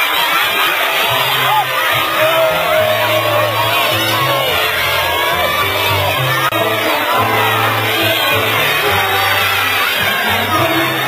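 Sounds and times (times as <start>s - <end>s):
crowd talking and calling out: 0.0s - 11.0s
music with steady bass line: 1.4s - 11.0s.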